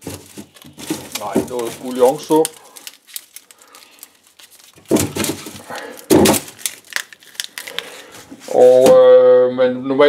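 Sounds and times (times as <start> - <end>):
onion skins rustling and crackling: 0.0 - 8.9.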